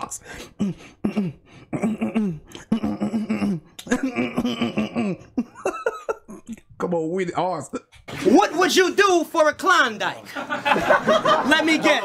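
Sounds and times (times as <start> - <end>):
man laughing hard: 4.0 - 6.6.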